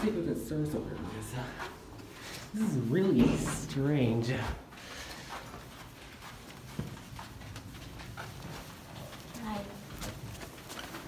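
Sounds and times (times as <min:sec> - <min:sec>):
footsteps on carpet: 0:00.7 - 0:11.0.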